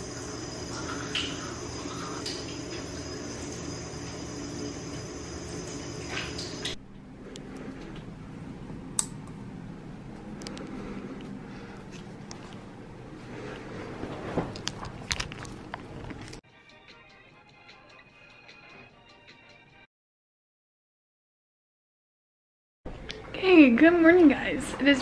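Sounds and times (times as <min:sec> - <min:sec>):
bathroom exhaust fan humming: 0:00.0 - 0:16.4, 0:22.9 - 0:25.0
toothbrush scrubbing: 0:00.7 - 0:02.3.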